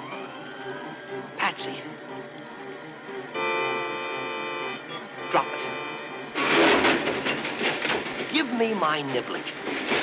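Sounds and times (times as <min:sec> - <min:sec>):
orchestral chord: 0:00.8 - 0:06.5.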